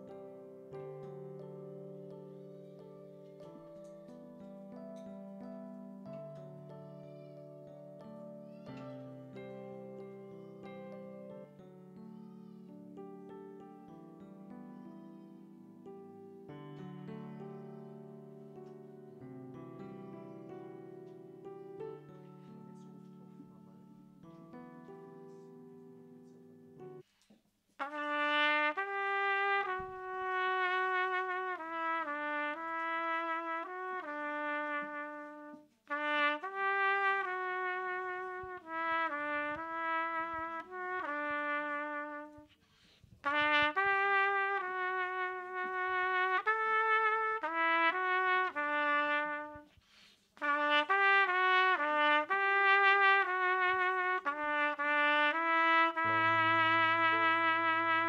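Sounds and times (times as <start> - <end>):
solo trumpet melody: 0.0 - 1.1, 27.8 - 42.6, 43.2 - 49.8, 50.4 - 58.0.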